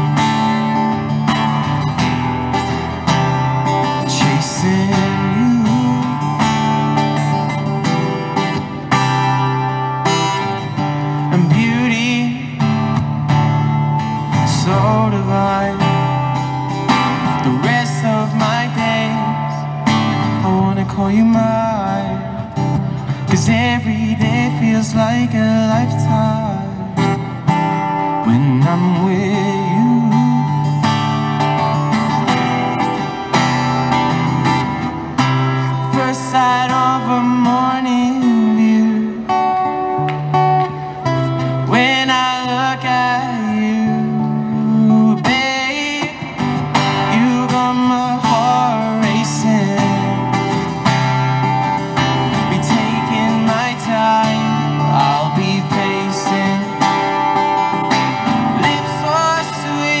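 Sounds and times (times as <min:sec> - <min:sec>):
acoustic guitar strumming: 0:00.0 - 1:00.0
man singing: 0:03.1 - 0:07.5, 0:10.2 - 0:13.5, 0:14.2 - 0:31.0, 0:35.6 - 0:40.0, 0:41.4 - 1:00.0.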